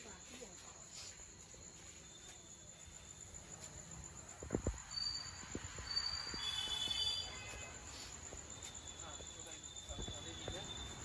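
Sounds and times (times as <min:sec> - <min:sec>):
crickets chirring: 0:00.0 - 0:11.0.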